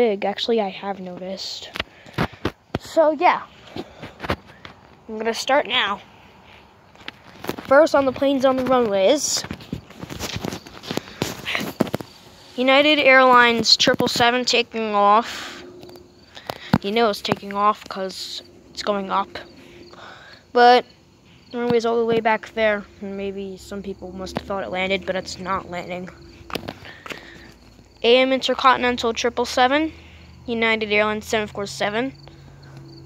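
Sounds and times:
faint outdoor background: 0:00.0 - 0:33.0
footsteps on concrete: 0:01.8 - 0:05.1, 0:05.9 - 0:12.4, 0:25.4 - 0:27.8.

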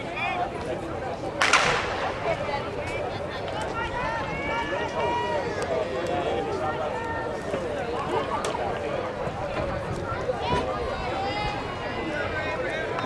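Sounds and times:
chatter of many voices: 0:00.0 - 0:13.0
sharp crack: 0:01.4 - 0:03.0.

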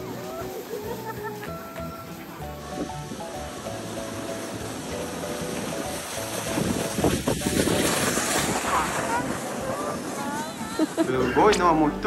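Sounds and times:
plastic sled scraping on snow: 0:00.0 - 0:12.0
wind on microphone: 0:05.4 - 0:10.8.

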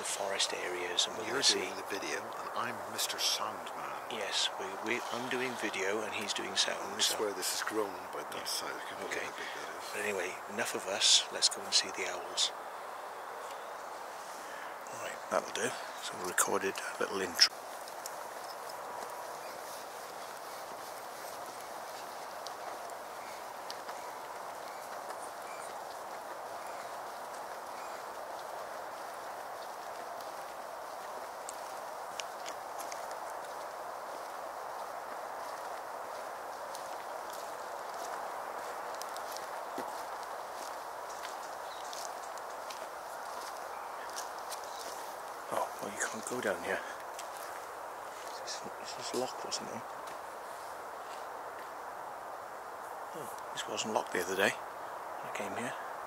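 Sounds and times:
steady hiss: 0:00.0 - 0:56.0
footsteps on a hard path: 0:15.2 - 0:53.6.

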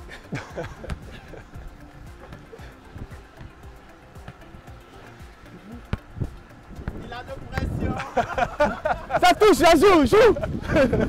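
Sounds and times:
music with regular beat: 0:00.0 - 0:10.7.

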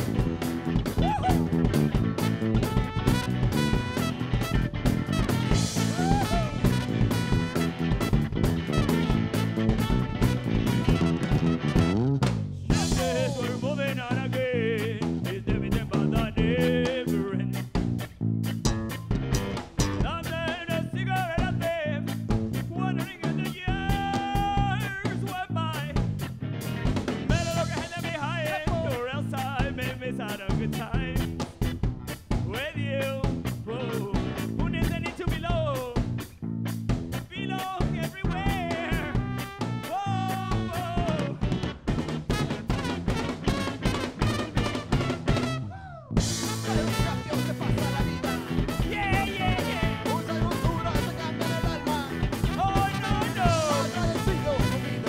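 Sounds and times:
live band playing: 0:00.0 - 0:55.0.

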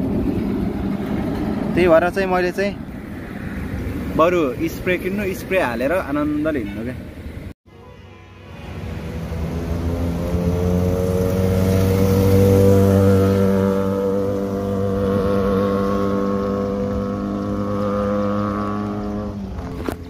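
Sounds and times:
motorcycle engines running: 0:09.0 - 0:20.0.

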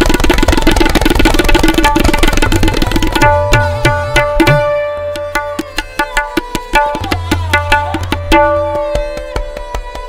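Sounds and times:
faint sarangi notes: 0:00.0 - 0:10.0
fast tabla strokes: 0:00.0 - 0:10.0.

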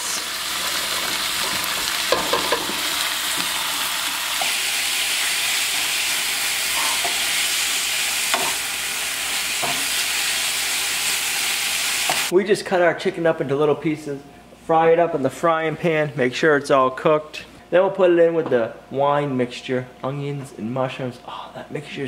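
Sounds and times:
chicken sizzling in a skillet: 0:00.0 - 0:12.3
wooden spatula knocking pan: 0:02.1 - 0:02.9.

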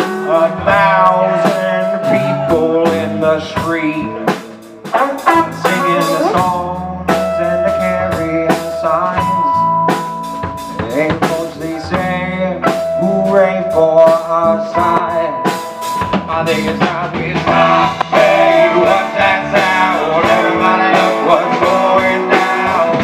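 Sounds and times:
bass guitar: 0:00.0 - 0:23.0
drum kit beat: 0:00.0 - 0:23.0
electric guitar lead notes: 0:04.9 - 0:07.9.

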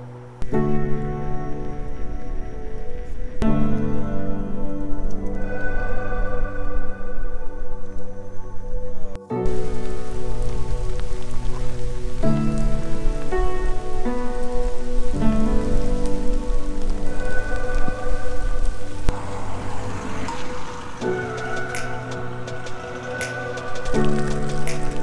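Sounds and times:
background music with held chords: 0:00.0 - 0:25.0
heavy rain pouring: 0:09.4 - 0:25.0.

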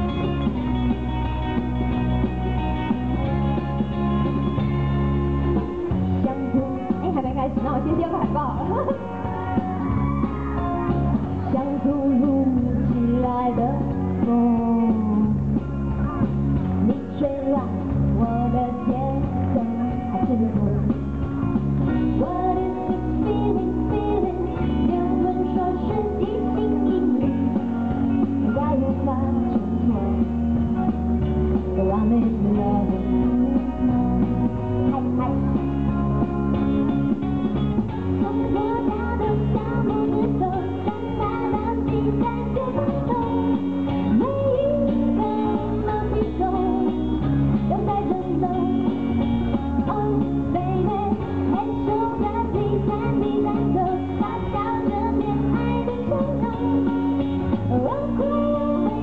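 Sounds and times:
band with bass and guitar: 0:00.0 - 0:59.0
woman singing into microphone: 0:06.2 - 0:09.7, 0:11.2 - 0:15.6, 0:16.7 - 0:21.1, 0:21.9 - 0:30.6, 0:31.7 - 0:35.8, 0:38.0 - 0:59.0.

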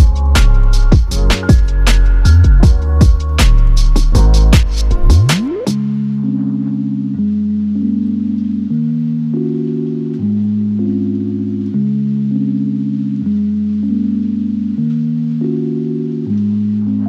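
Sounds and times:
sustained music chords: 0:00.0 - 0:17.0.

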